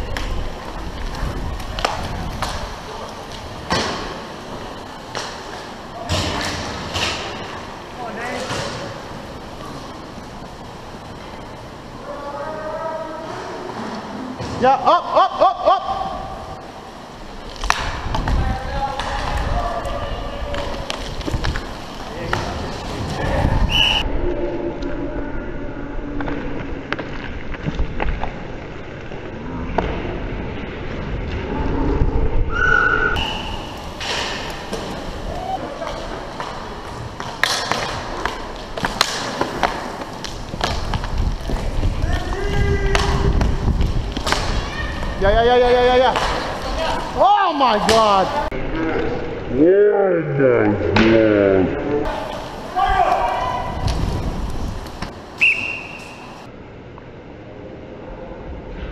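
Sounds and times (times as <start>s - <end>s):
skate wheels rumbling on rink: 0.0s - 15.0s, 15.7s - 24.2s, 25.8s - 49.5s, 52.0s - 56.5s
sticks and puck clacking: 35.6s - 48.3s
players shouting: 52.1s - 53.9s.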